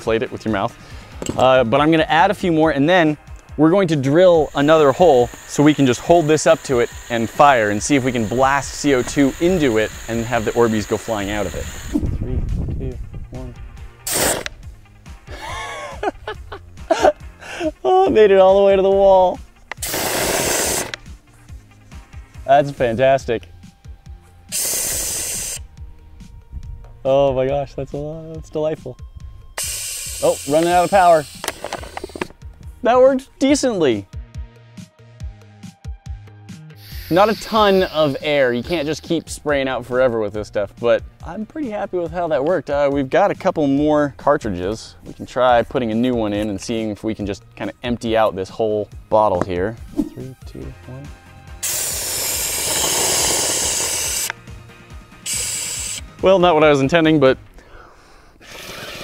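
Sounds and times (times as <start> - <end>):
pressurised gas hissing: 3.3 - 12.2, 13.8 - 17.8, 19.6 - 22.9, 24.1 - 25.9, 29.5 - 32.4, 36.7 - 39.2, 51.5 - 56.2, 57.6 - 59.0.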